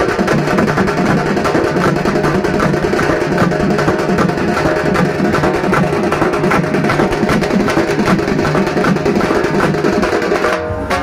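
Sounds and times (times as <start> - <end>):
drum-driven music: 0.0 - 11.0.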